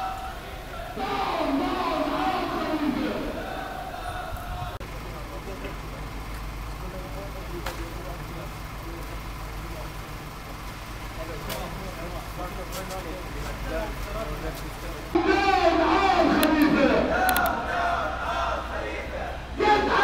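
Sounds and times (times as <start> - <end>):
vehicle engine idling: 0.0 - 20.0.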